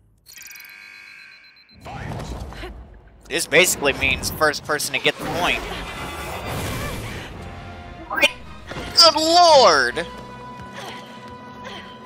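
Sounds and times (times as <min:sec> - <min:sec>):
ringing synthesized chime tone: 0:00.3 - 0:01.8.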